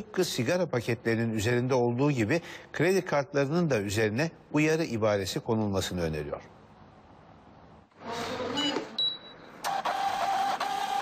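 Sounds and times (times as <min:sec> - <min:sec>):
short high beep: 0:08.6 - 0:09.5
receipt printer running: 0:09.7 - 0:11.0.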